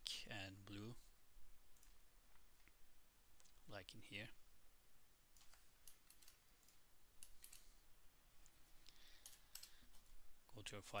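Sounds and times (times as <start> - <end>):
computer keyboard typing: 5.4 - 7.7, 9.2 - 9.8.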